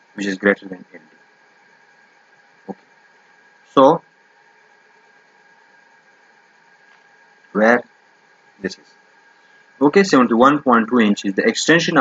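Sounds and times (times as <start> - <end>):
faint steady hiss: 0.0 - 12.0
thin constant hum: 0.0 - 12.0.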